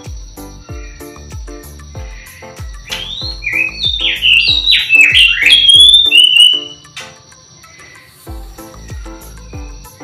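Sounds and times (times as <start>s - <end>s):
background music with drumbeat: 0.0s - 10.0s
songbird singing: 0.0s - 10.0s.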